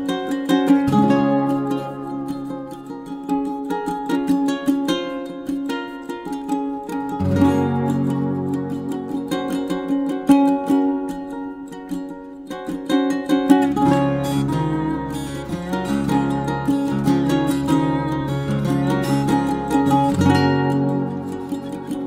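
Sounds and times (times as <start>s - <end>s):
plucked-string music: 0.0s - 22.0s.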